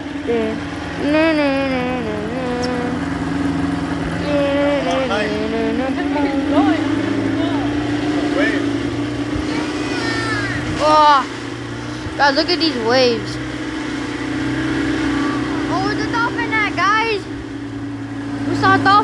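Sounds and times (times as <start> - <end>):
motorboat engine running: 0.0 - 19.0
people's voices: 0.2 - 13.4, 15.0 - 17.4, 18.4 - 19.0.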